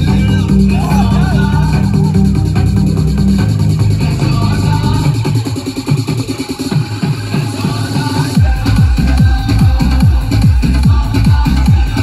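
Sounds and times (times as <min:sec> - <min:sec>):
heavy low bass: 0:00.0 - 0:06.0, 0:08.0 - 0:12.0
electronic dance music over loudspeaker: 0:00.0 - 0:12.0.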